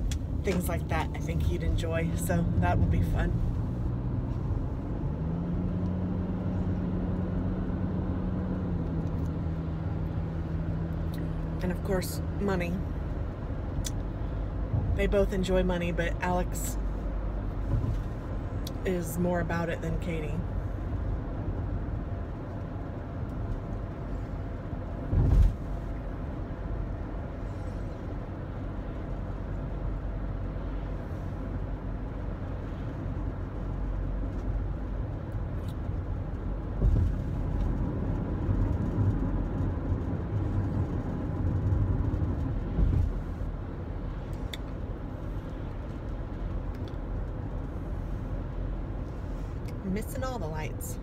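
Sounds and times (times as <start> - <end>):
car cabin road rumble: 0.0 - 51.0.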